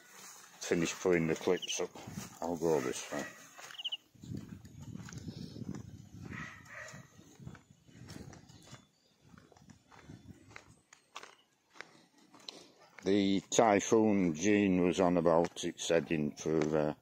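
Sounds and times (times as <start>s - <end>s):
footsteps on concrete: 0.0s - 14.5s, 15.3s - 16.9s.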